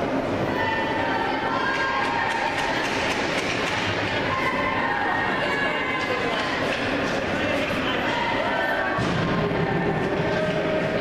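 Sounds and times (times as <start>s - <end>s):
skates and sticks clicking on ice: 1.6s - 4.2s.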